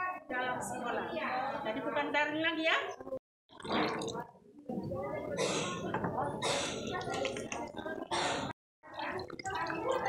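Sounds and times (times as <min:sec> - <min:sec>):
water splashing on hands: 0:06.8 - 0:07.8.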